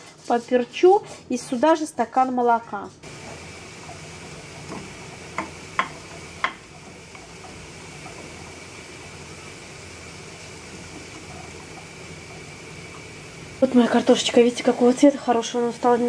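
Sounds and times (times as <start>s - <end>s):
meat sizzling in a frying pan: 3.0s - 16.0s
spatula tapping a pan: 4.7s - 8.3s.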